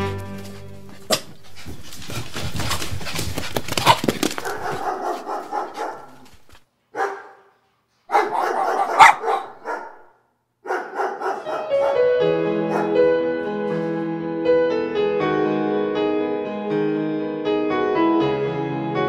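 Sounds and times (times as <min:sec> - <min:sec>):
dogs barking and yelping: 0:00.9 - 0:07.5, 0:08.1 - 0:13.0.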